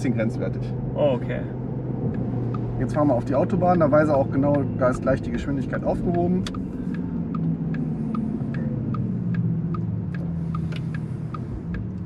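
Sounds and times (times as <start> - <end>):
low hum and road rumble: 0.0 - 12.0
light ticking: 2.1 - 12.0.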